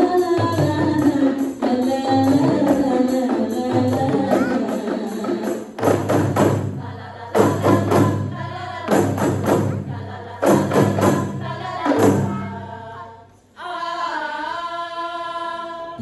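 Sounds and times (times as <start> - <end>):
group singing: 0.0 - 16.0.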